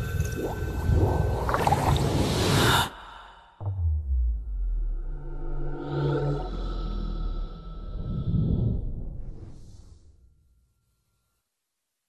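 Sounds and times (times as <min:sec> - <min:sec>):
deep low tone: 0:03.6 - 0:09.6.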